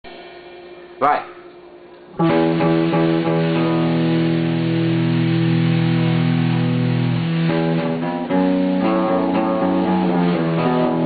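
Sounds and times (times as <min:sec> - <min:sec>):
acoustic guitars playing: 0:02.1 - 0:11.0.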